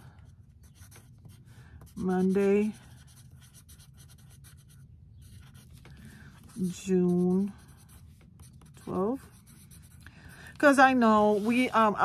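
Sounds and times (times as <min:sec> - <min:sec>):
pencil scratching on paper: 0:00.6 - 0:05.8, 0:06.4 - 0:10.0.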